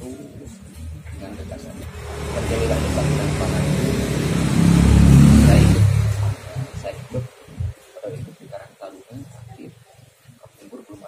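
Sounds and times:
vehicle engine revving: 0.8s - 7.8s.

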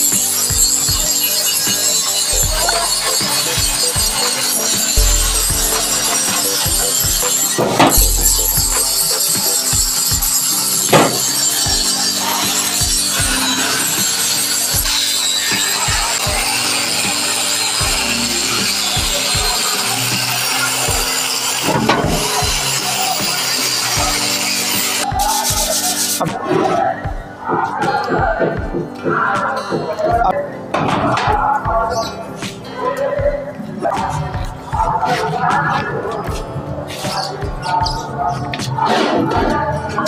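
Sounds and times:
angle grinder grinding metal: 0.0s - 25.1s
background music with low beat: 0.0s - 40.0s.

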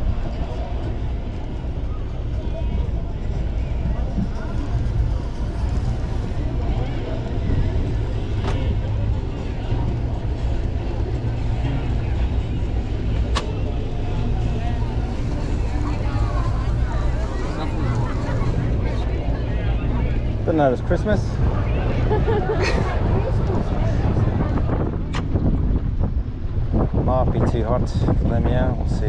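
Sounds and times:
motor boat engines rumbling: 0.0s - 29.0s
wind buffeting microphone: 0.0s - 29.0s.

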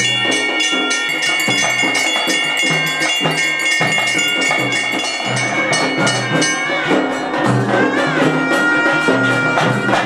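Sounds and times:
hand bell ringing: 0.0s - 7.8s
steady drumming: 0.0s - 10.0s.

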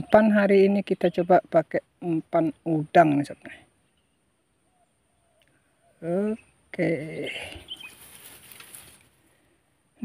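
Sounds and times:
fishing line rustling: 7.6s - 9.4s.

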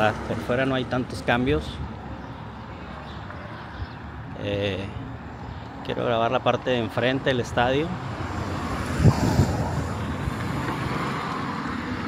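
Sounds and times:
car driving along road: 7.9s - 12.0s.

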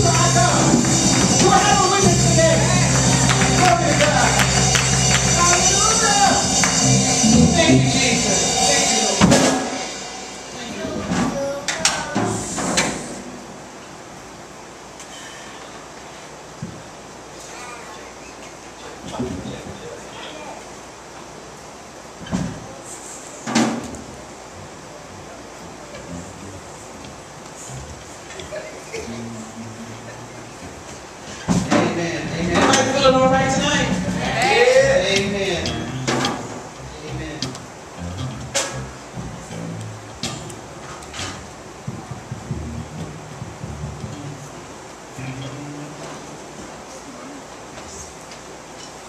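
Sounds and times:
sung note: 0.0s - 10.7s, 35.6s - 37.4s, 38.0s - 40.0s
murmur of voices: 0.0s - 13.3s, 24.0s - 48.7s
room background noise: 0.0s - 49.0s.

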